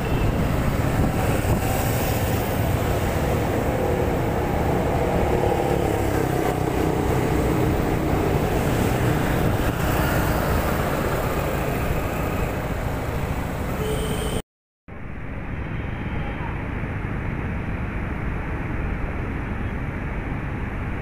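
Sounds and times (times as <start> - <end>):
wind rumble on microphone: 0.0 - 12.9
passing traffic: 0.0 - 21.0
road noise: 0.0 - 21.0.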